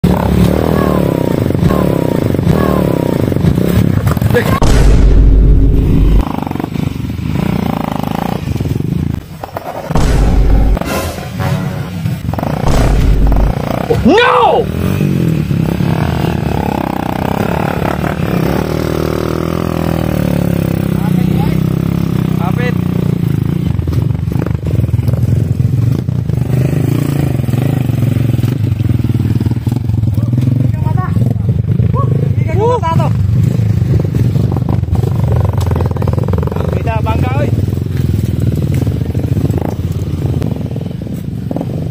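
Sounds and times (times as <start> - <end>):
people's voices: 0.4 - 3.2
person shouting: 0.5 - 3.1, 13.8 - 14.8
small motorcycle engines: 13.5 - 41.9.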